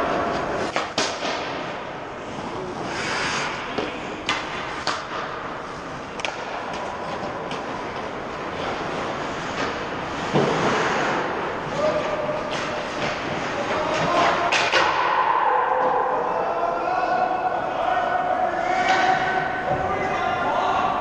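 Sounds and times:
hockey sticks and puck clacking: 0.0 - 16.2, 18.6 - 20.8
skate blades scraping on ice: 5.6 - 14.4.

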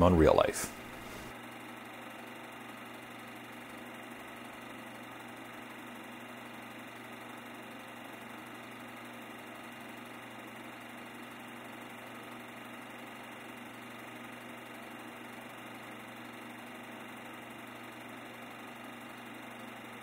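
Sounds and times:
mechanical hum: 0.0 - 20.0.

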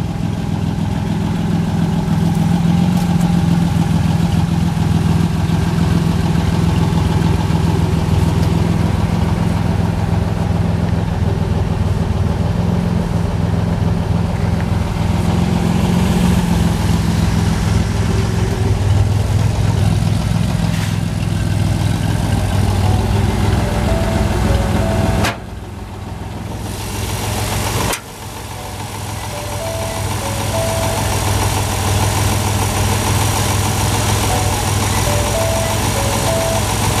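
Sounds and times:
car engine idling: 0.0 - 37.0.

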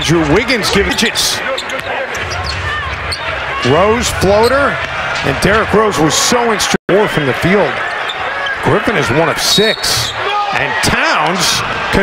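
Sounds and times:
arena crowd murmur: 0.0 - 12.0
sneakers squeaking: 0.6 - 3.4.

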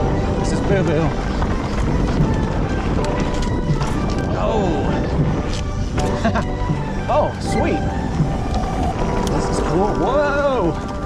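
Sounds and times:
background music: 0.0 - 11.0
tyres rolling over dirt trail: 0.0 - 11.0
wind rushing on microphone: 0.0 - 11.0.

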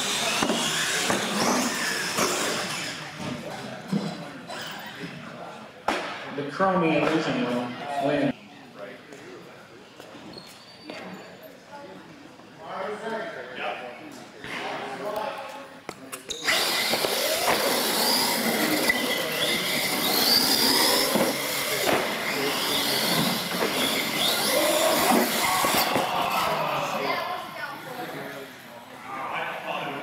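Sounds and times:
electric motors whining: 0.0 - 3.2, 16.3 - 28.4
people talking: 17.3 - 30.0.

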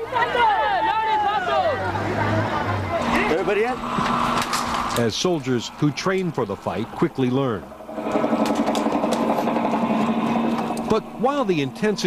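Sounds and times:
motor running with rattle: 3.8 - 12.0.

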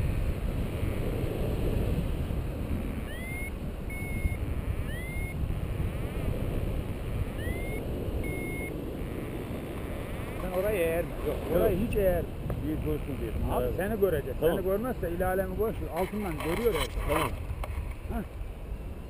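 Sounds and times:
wind rushing over microphone: 0.0 - 19.0
variometer high beeps: 2.7 - 10.8.

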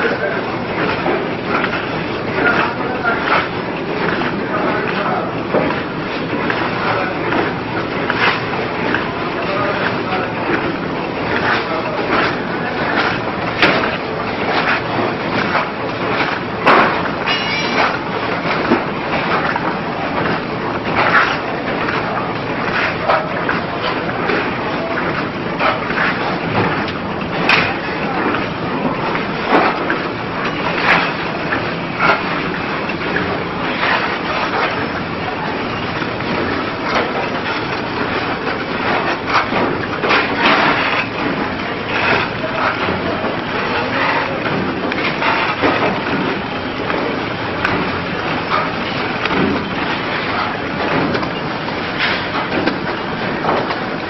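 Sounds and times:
packing machine clatter: 0.0 - 54.0.

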